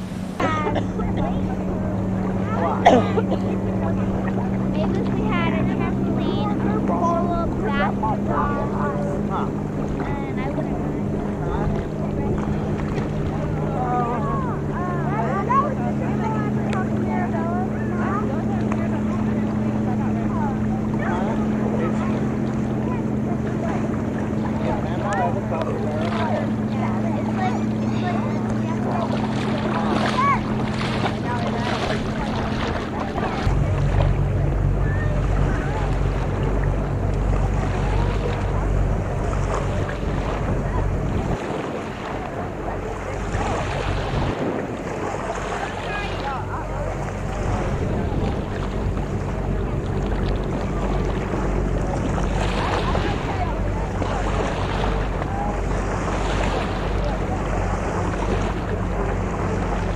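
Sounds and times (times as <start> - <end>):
faint distant voices: 0.0 - 59.9
low engine hum: 0.0 - 59.9
water lapping: 0.0 - 59.9
wind rumbling on microphone: 0.0 - 59.9.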